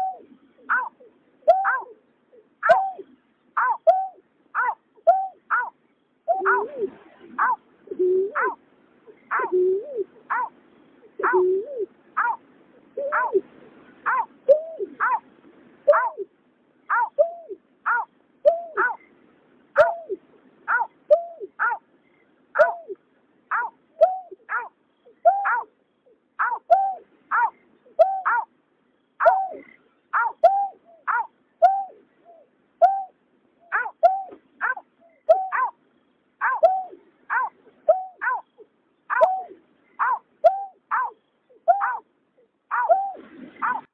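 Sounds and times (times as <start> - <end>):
bird hooting calls: 0.0 - 15.2, 15.9 - 28.5, 29.1 - 43.9.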